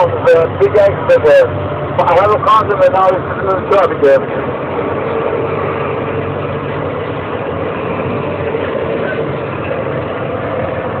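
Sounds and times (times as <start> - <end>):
diesel truck engine droning: 0.0 - 11.0.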